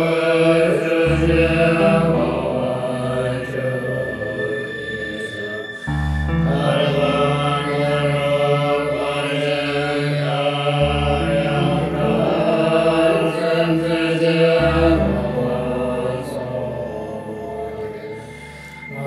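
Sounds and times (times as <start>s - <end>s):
monks chanting: 0.0s - 19.0s
sustained low instrumental notes: 0.9s - 9.2s, 10.8s - 19.0s.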